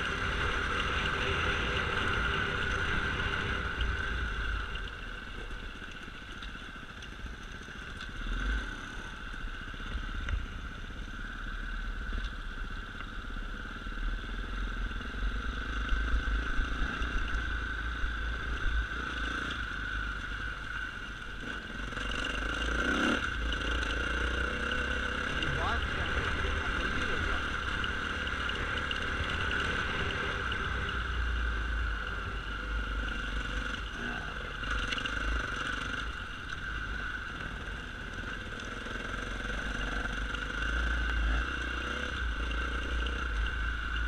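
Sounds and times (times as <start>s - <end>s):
dirt bike engine running: 0.0s - 44.0s.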